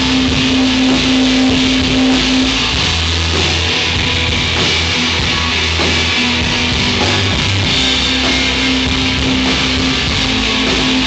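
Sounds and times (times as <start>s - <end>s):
rock band playing live: 0.0s - 11.0s.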